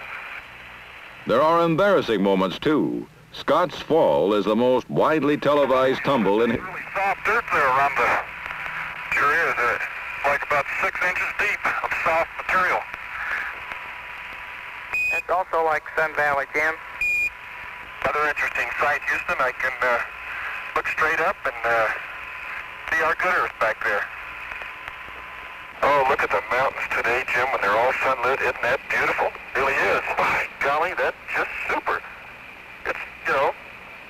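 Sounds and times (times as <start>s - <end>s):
steady static hiss: 0.0s - 34.0s
narrow-band radio speech: 3.4s - 13.6s, 15.1s - 16.9s, 18.0s - 24.2s, 25.8s - 32.2s, 32.8s - 33.6s.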